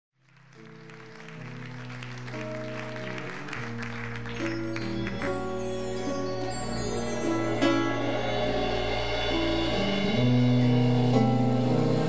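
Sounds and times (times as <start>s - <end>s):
sustained band chords: 4.6s - 12.0s.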